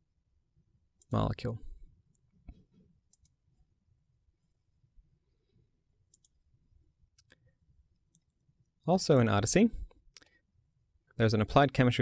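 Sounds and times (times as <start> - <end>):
computer mouse clicks: 2.1 - 3.4, 6.1 - 6.4.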